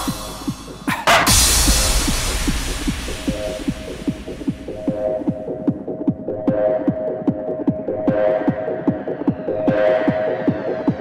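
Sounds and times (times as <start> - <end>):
pitch-dropping kick drum: 0.0 - 11.0.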